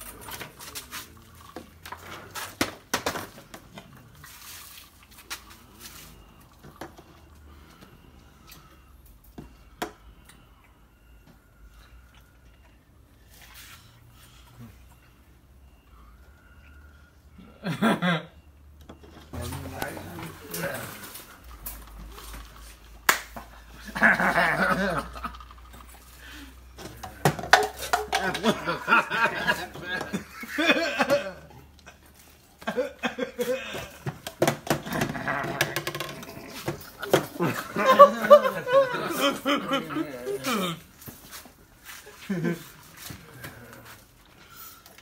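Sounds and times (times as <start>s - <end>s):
plastic cups clacking on table: 26.7s - 30.3s, 33.7s - 37.9s.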